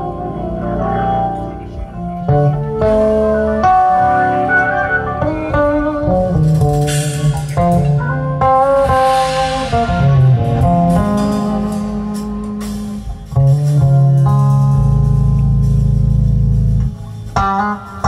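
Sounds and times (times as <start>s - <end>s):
electric bass guitar chords: 0.0s - 18.0s.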